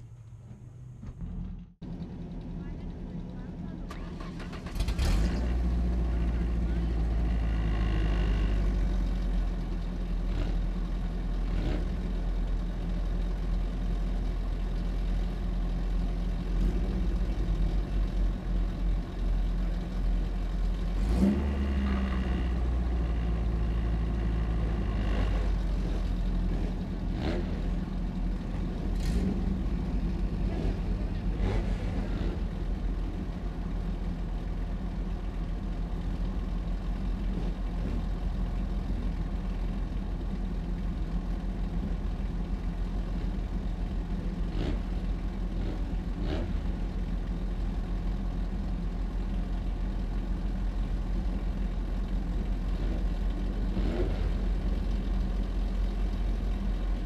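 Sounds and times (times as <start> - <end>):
race car engine idling and revving: 0.0 - 57.0
race car engine starting: 3.7 - 8.8, 20.7 - 23.0, 26.5 - 33.4.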